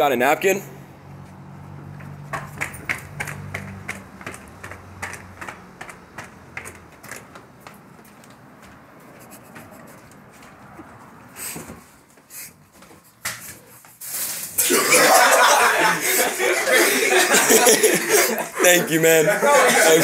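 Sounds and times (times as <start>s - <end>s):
footsteps climbing stairs: 1.2s - 14.0s.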